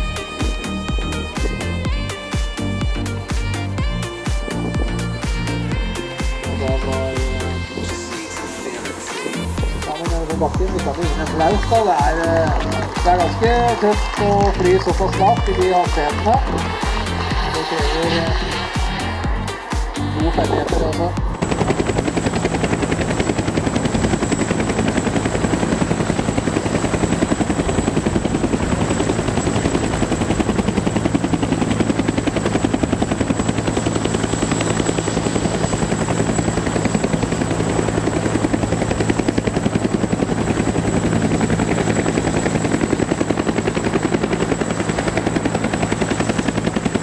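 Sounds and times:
model helicopter rotor chopping: 9.0 - 47.0.

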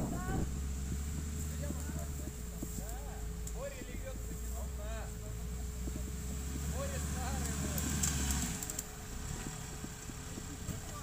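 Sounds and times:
heavy low rumble: 0.0 - 11.0
off-road vehicle engine humming: 0.0 - 11.0.

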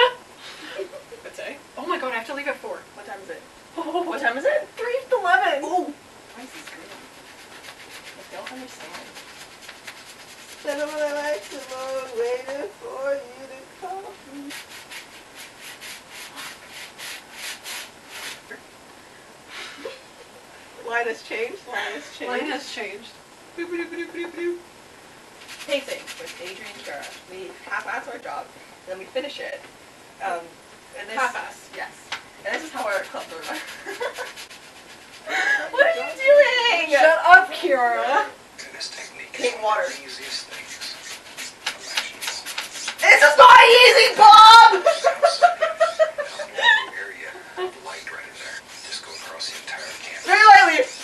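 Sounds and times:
paintbrushes scrubbing on canvas: 6.6 - 12.4, 14.4 - 18.5, 25.4 - 27.4, 32.6 - 35.3, 38.9 - 43.6, 47.8 - 51.0.

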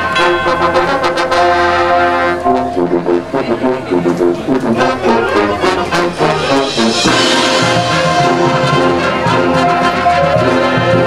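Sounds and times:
marching band brass playing: 0.0 - 11.0
drum strikes: 2.4 - 11.0.

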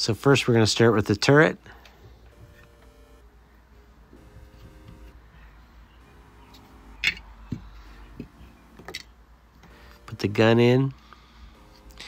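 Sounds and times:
faint background music: 2.3 - 11.0.

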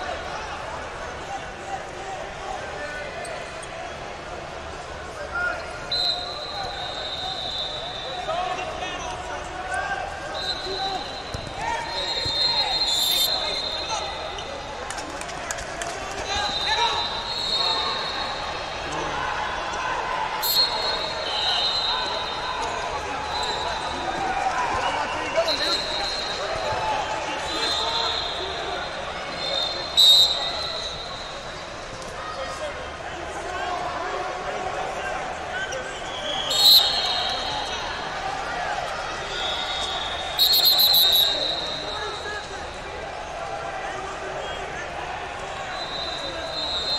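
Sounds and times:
murmur of crowd voices: 0.0 - 46.9
referee whistle blasts: 5.9 - 8.7, 10.3 - 14.6, 16.3 - 18.6, 20.4 - 24.0, 25.4 - 26.7, 27.4 - 31.6, 35.9 - 38.0, 39.3 - 42.8, 45.6 - 46.9.

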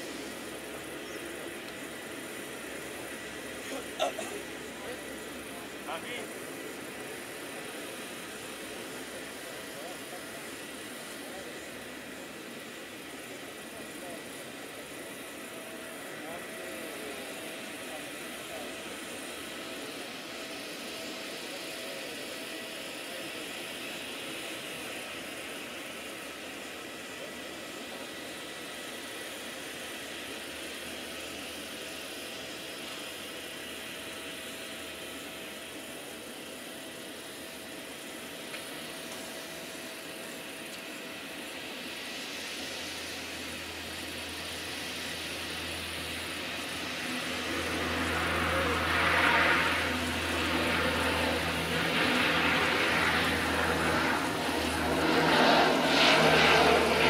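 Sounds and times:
deep aircraft hum: 0.0 - 57.0
distant turboprop engines drone: 0.0 - 57.0.

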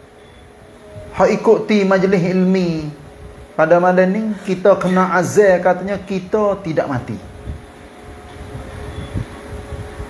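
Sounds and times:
constant low hum: 0.0 - 10.0
steady tone: 0.0 - 10.0.

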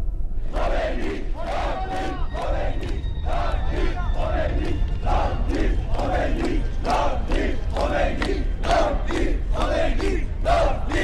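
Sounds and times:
crowd chanting and shouting: 0.4 - 11.0.

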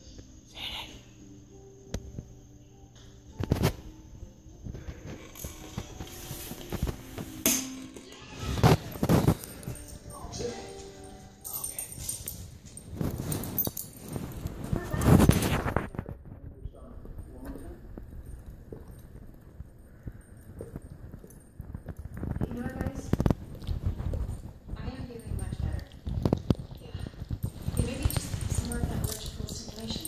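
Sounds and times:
dogs licking and mouth-smacking: 18.0 - 30.0.

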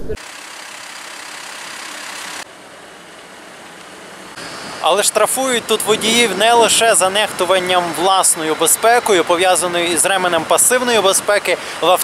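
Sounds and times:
street traffic hiss: 0.0 - 12.0.

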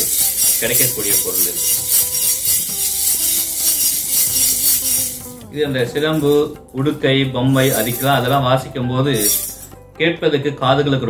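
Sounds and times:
brass hand rings jingling: 0.0 - 8.4, 9.1 - 9.8.

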